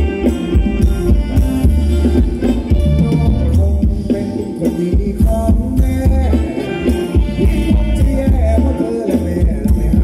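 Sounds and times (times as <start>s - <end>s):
live band dance music: 0.0s - 10.0s.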